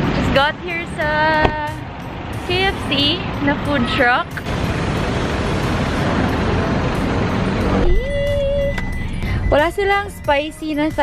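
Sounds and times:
street traffic passing cars: 0.0s - 11.0s.

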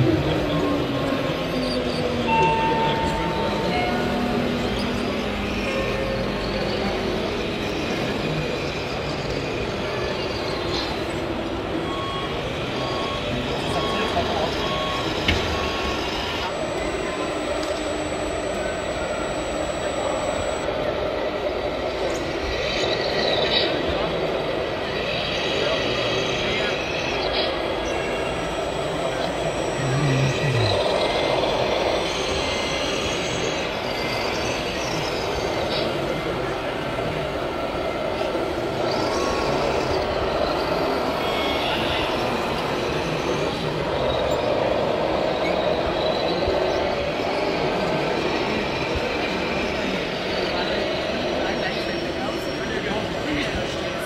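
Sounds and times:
people talking: 2.2s - 7.3s, 12.8s - 20.7s, 26.4s - 32.0s, 50.4s - 54.0s.

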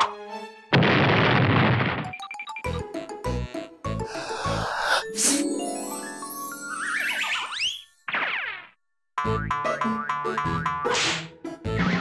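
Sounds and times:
upbeat cartoon music: 2.1s - 8.5s, 9.2s - 12.0s.

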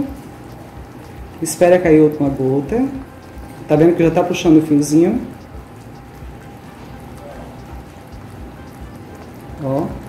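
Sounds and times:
syrup bubbling at a boil: 0.0s - 10.0s.

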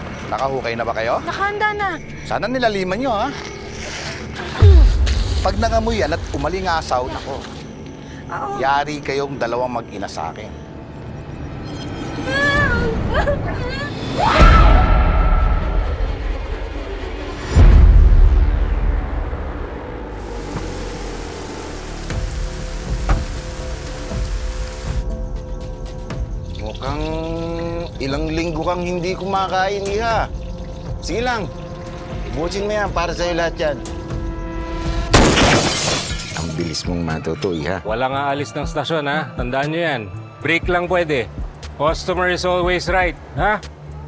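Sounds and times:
rain-like hiss: 3.6s - 7.6s, 20.1s - 25.1s
low drone: 14.1s - 27.6s.

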